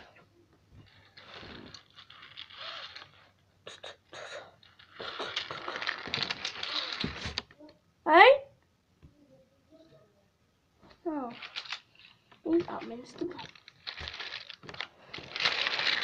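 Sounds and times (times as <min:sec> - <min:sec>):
child making hissing mouth noises: 0:03.6 - 0:07.3.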